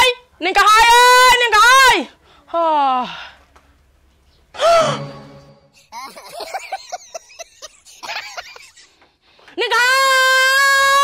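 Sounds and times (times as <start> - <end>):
breathy gasp of shock: 4.6 - 5.1.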